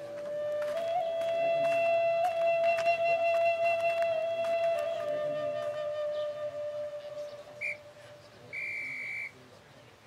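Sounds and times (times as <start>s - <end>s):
held flute note: 0.0s - 9.4s
high whistle tone: 0.0s - 9.4s.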